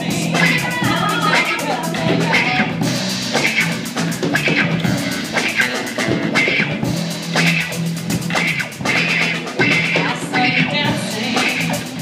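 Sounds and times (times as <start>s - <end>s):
live rock band playing: 0.0s - 12.0s
steady bass line: 0.0s - 12.0s.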